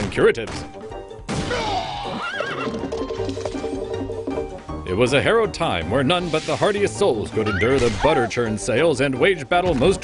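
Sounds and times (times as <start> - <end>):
background music with held notes: 0.0 - 10.0
horse whinnying: 1.6 - 3.2.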